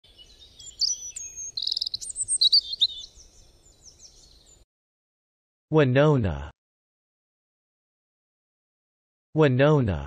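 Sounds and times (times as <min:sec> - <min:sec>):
bird trill: 0:00.0 - 0:04.6
bird chirps and whistles: 0:00.2 - 0:04.5.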